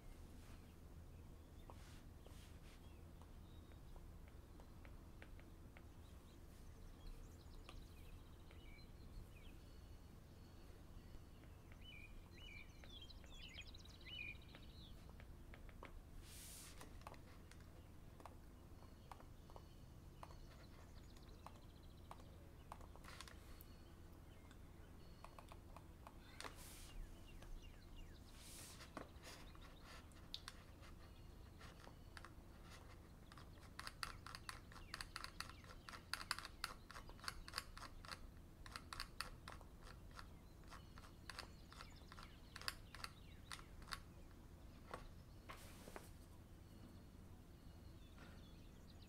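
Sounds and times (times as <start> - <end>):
rapid faint high ticks: 29.6 - 31.0.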